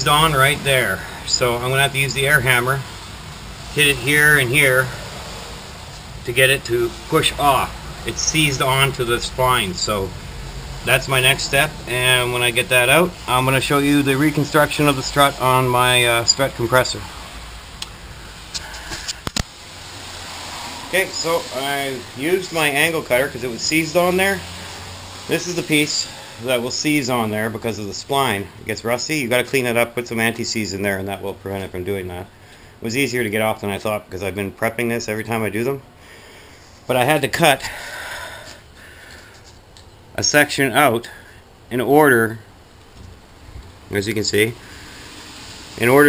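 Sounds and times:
soft breath-like hiss: 0:04.8 - 0:06.2, 0:17.0 - 0:23.0, 0:24.4 - 0:26.6, 0:32.3 - 0:32.8, 0:36.0 - 0:36.9, 0:37.6 - 0:39.6, 0:41.0 - 0:41.5, 0:44.6 - 0:46.0.

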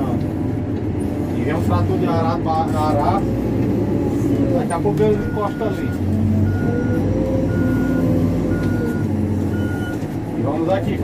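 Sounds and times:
diesel engine running: 0:00.0 - 0:11.0
backup alarm beeping: 0:05.1 - 0:10.0.

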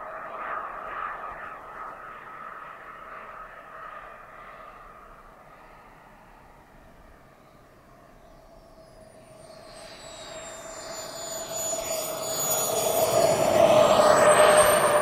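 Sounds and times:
model jet turbine whine: 0:00.0 - 0:15.0.

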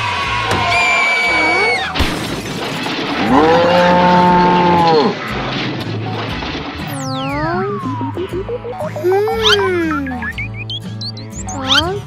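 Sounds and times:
cow mooing: 0:03.2 - 0:05.2.

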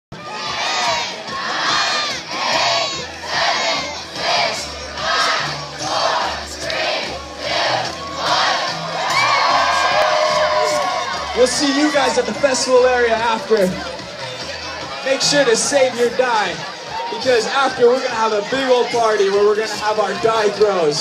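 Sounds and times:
crowd cheering: 0:00.1 - 0:21.0
crowd chanting in unison: 0:00.2 - 0:10.4.

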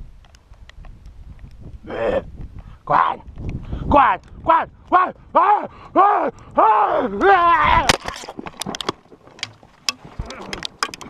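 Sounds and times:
man shouting loudly: 0:03.9 - 0:07.9.

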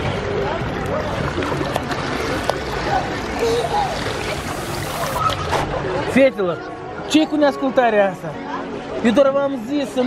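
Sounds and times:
pool water splashing: 0:00.0 - 0:10.0.

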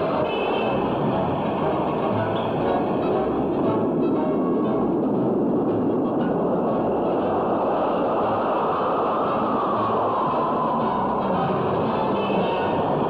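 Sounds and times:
jet aircraft flying low: 0:00.0 - 0:13.0.

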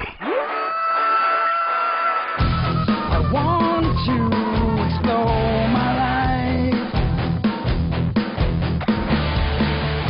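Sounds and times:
background music: 0:01.1 - 0:10.0.

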